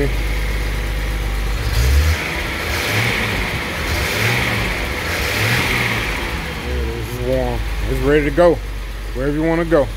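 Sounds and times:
car engine revving: 0.0s - 9.9s.

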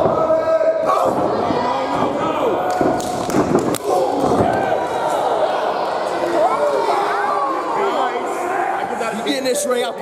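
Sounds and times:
spectators shouting: 3.8s - 9.1s.

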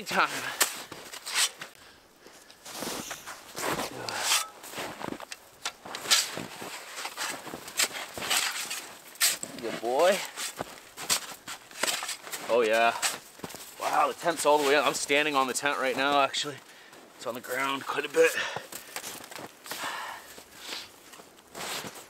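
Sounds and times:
snow shovel crunching into snow: 2.6s - 16.3s, 17.0s - 22.0s.

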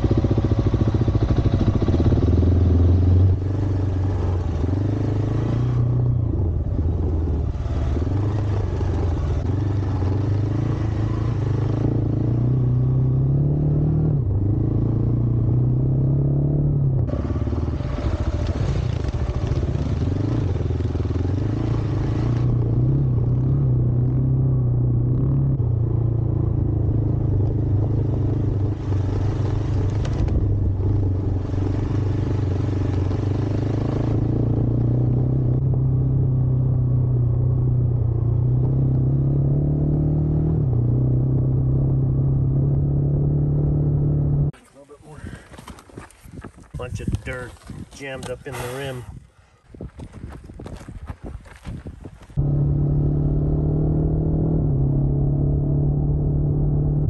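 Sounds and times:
motorcycle engine revving: 0.0s - 44.6s, 52.3s - 57.0s.

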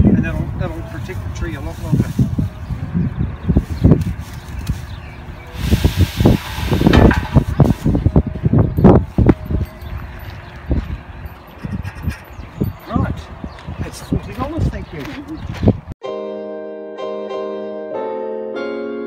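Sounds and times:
wind buffeting microphone: 0.0s - 16.0s
tree scraping through metal funnel: 5.5s - 8.1s.

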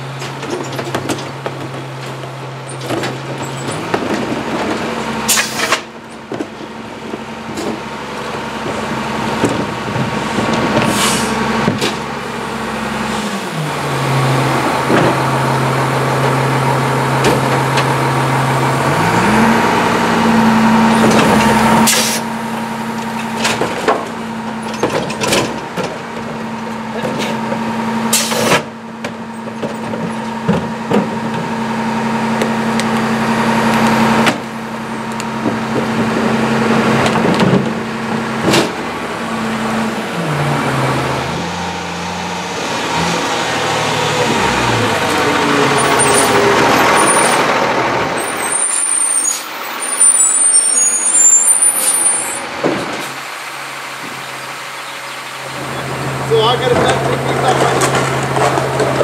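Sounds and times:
cart clanking against hopper: 0.0s - 12.2s, 16.1s - 18.2s, 20.9s - 39.3s, 42.7s - 54.4s, 55.1s - 59.0s
garbage truck engine and hydraulics: 0.0s - 59.0s
air brakes: 5.3s - 5.9s, 10.8s - 11.4s, 21.8s - 22.3s, 28.1s - 28.7s
high squeal: 45.6s - 47.5s, 48.2s - 52.5s.

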